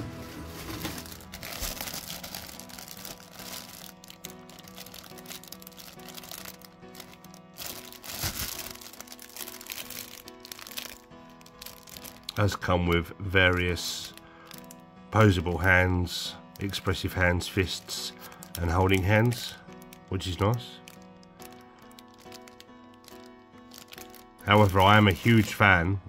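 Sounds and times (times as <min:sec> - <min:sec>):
background music: 0:00.0 - 0:26.0
plastic bags crinkling: 0:00.1 - 0:25.7.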